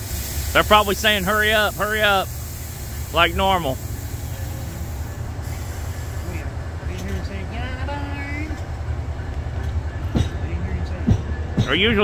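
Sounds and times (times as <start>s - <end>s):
train low rumble: 0.0s - 12.0s.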